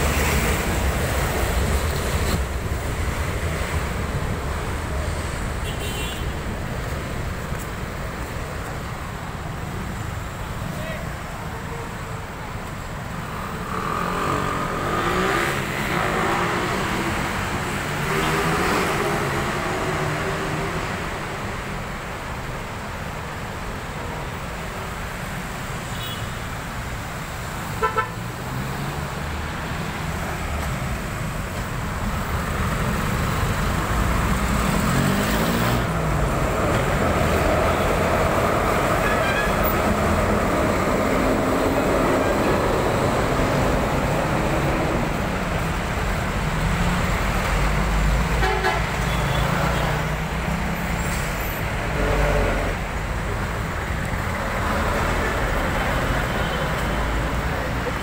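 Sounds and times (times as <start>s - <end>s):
cars passing: 0.0s - 58.0s.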